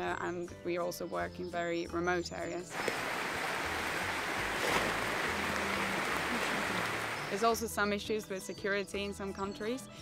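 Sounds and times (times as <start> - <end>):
faint background music: 0.0 - 2.9, 3.5 - 10.0
rain on foliage: 2.7 - 7.4.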